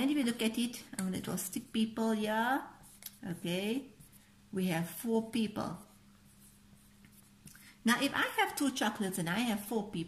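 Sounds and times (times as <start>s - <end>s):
woman speaking: 0.0s - 6.0s, 7.8s - 10.0s
marker drawing on whiteboard: 0.0s - 9.1s.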